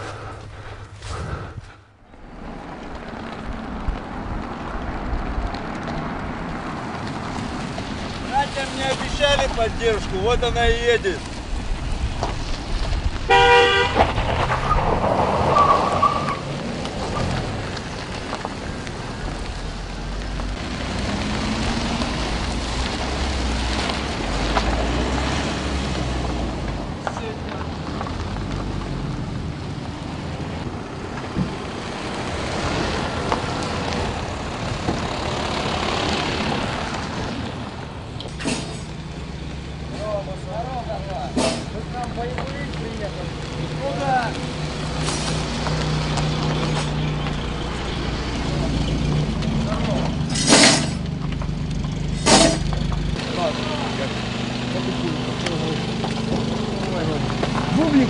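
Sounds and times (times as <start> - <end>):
truck engines running: 0.0 - 58.0
indistinct voices: 46.6 - 51.0
sharp bangs: 52.2 - 52.8.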